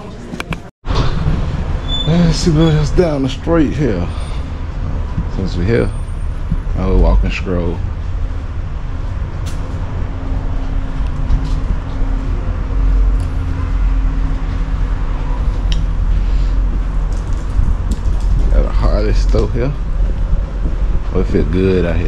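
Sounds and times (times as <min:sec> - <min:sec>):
steady low hum: 0:01.2 - 0:22.0
wind buffeting microphone: 0:13.8 - 0:22.0.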